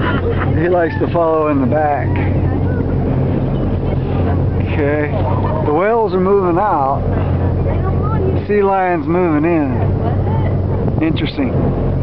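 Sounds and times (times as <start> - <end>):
boat engine humming: 0.0 - 12.0.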